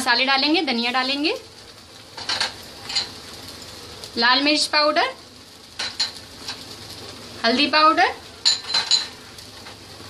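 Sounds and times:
food frying in a pan: 0.0 - 10.0
dishware clinks: 8.4 - 9.2.

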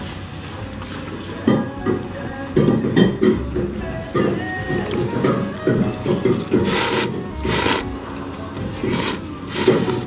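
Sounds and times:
noodles slurped: 3.6 - 10.0.

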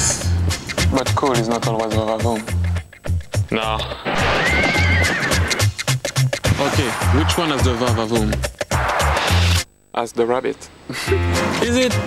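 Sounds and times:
horse whinnying: 4.1 - 5.7
background music with bass beat: 5.4 - 9.7.

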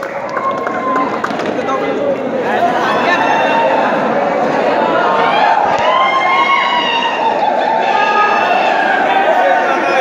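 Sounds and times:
crowd talking and shouting: 0.0 - 10.0.

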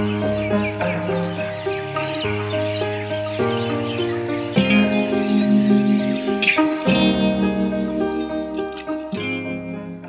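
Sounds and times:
sustained background music chords: 0.0 - 10.0.

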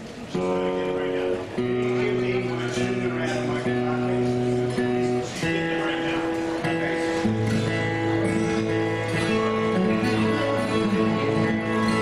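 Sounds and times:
acoustic guitars playing: 0.0 - 12.0.

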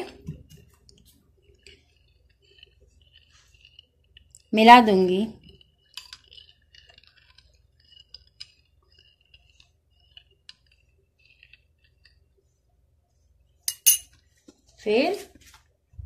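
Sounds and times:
metal spoon clinking on bowl: 13.7 - 14.2.

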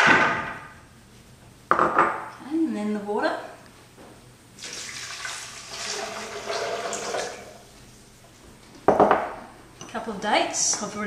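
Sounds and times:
water pouring into blender jar: 4.6 - 7.5.

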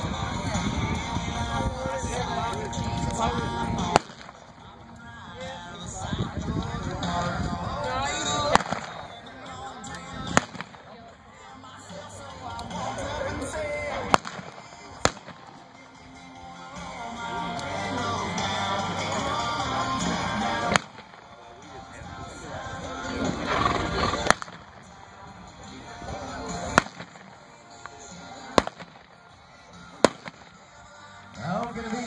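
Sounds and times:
faint music: 0.0 - 32.0
sharp gunshots: 3.8 - 4.5, 8.4 - 9.1, 10.3 - 10.9, 14.0 - 15.6, 20.6 - 21.2, 24.2 - 24.8, 26.6 - 27.4, 28.6 - 29.1, 30.0 - 30.6
sharp gunshot: 26.8 - 27.2.

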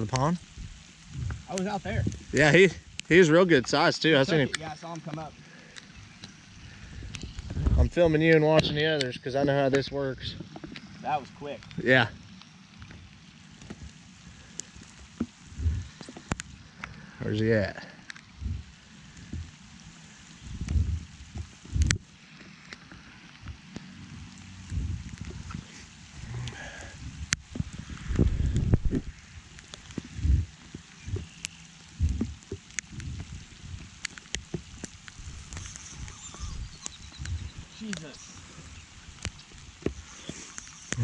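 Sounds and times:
low bumps: 0.0 - 4.1, 6.2 - 8.8, 15.1 - 16.4, 20.4 - 22.1, 22.9 - 41.0
light rain on a pond: 0.0 - 41.0
sharp rain ticks: 0.0 - 41.0.

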